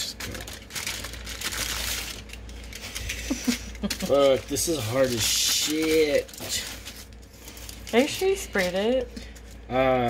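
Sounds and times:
aluminium foil crinkling: 0.0s - 9.7s.

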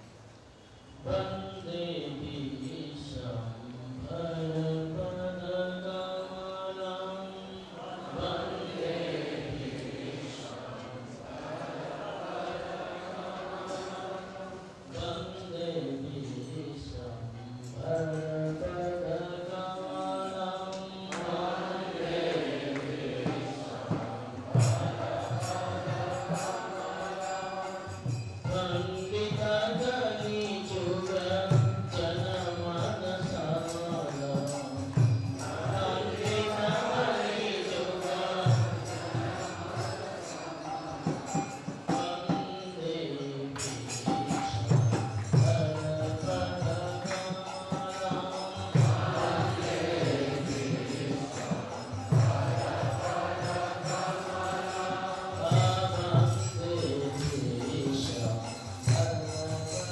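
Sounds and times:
man chanting: 0.9s - 9.1s, 12.8s - 24.6s, 25.9s - 51.8s, 54.8s - 59.9s.

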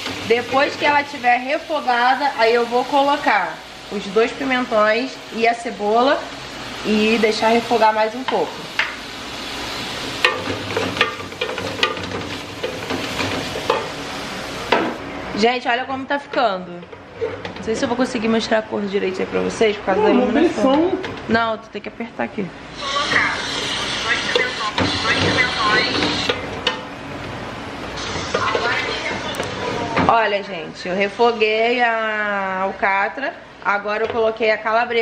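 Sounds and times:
meat sizzling in a pot: 0.0s - 15.0s, 22.7s - 26.6s.

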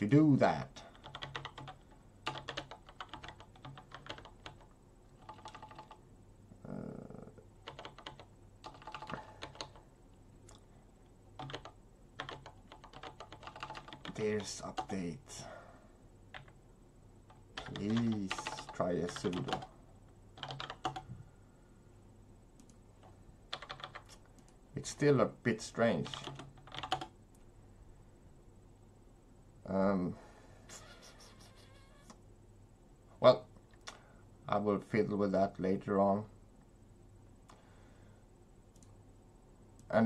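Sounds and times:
computer keyboard typing: 0.9s - 6.0s, 7.6s - 9.8s, 11.4s - 14.9s, 16.3s - 16.6s, 17.3s - 19.7s, 20.4s - 21.1s, 23.5s - 24.6s, 26.0s - 27.1s.

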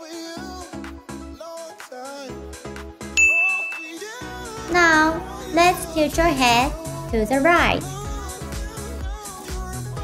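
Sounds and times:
background music with pulsing beat: 0.0s - 10.0s
bright chime ding: 3.2s - 4.2s.

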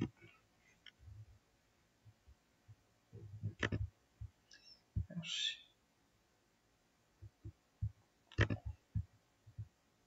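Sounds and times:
computer mouse clicks: 3.4s - 3.9s, 7.2s - 9.7s.

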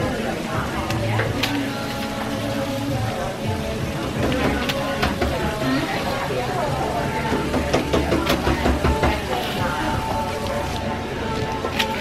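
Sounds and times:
background music: 0.0s - 12.0s
water spraying onto hair: 0.0s - 12.0s.

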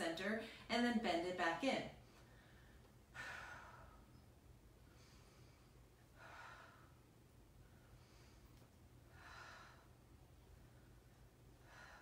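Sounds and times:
woman breathing: 2.0s - 12.0s.

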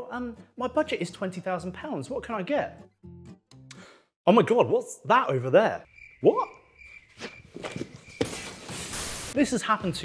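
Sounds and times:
person scrambling thuds and shuffles: 7.1s - 9.4s.

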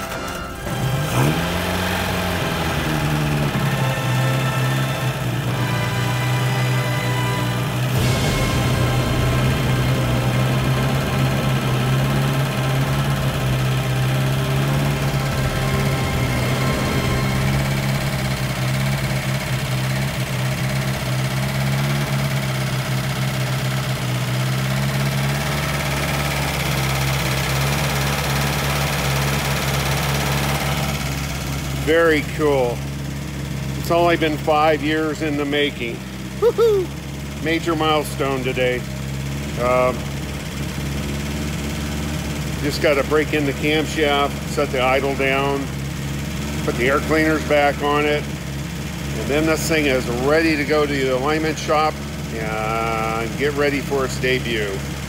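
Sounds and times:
car engine starting and idling: 0.0s - 55.0s.

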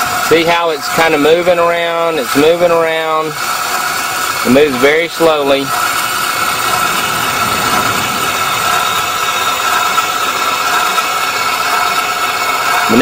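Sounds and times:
gate motor whining: 3.7s - 11.4s.

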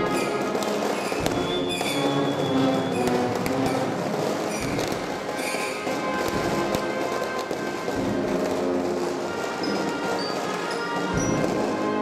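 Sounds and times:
brass band playing funeral march: 0.0s - 12.0s
sharp cracks: 0.0s - 12.0s.

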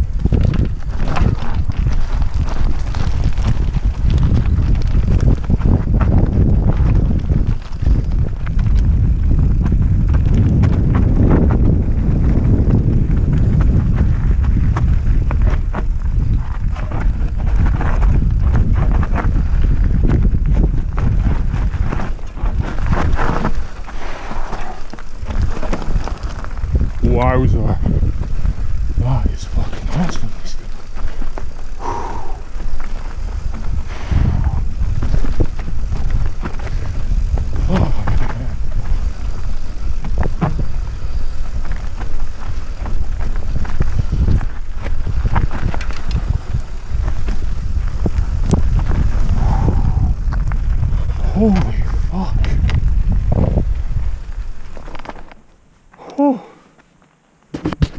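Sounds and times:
bike rattling and knocking: 0.0s - 55.5s
wind rumble on microphone: 0.0s - 56.4s.

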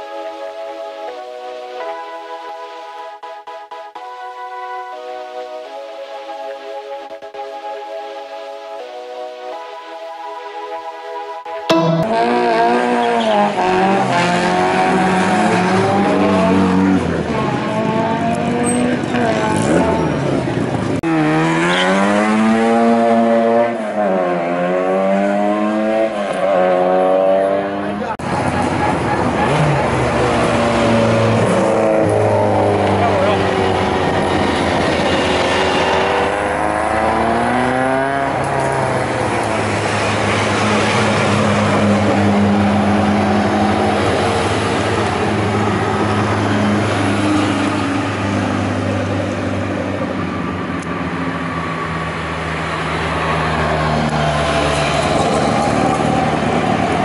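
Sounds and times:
race car engine revving: 11.7s - 50.8s.

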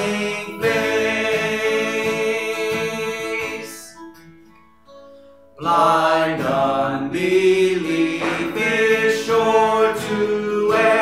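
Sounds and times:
man singing: 0.0s - 4.0s, 5.6s - 11.0s
acoustic guitar strumming: 0.0s - 11.0s.

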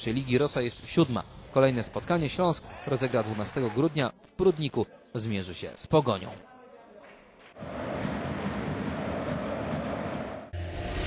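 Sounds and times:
sports hall crowd noise: 0.2s - 5.2s, 6.4s - 10.6s
music: 9.3s - 11.0s.

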